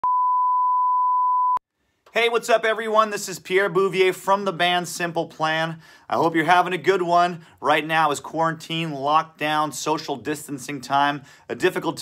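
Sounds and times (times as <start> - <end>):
steady electronic beep: 0.0 - 1.6.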